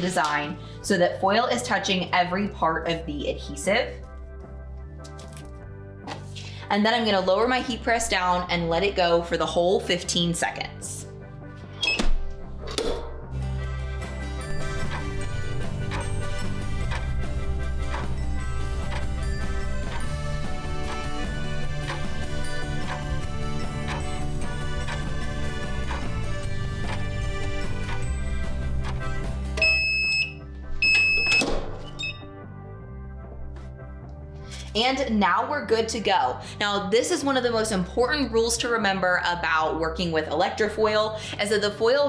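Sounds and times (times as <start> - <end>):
background music: 0.0 - 42.0
heat press opening rush: 14.6 - 29.7
timer beeping: 29.6 - 31.4.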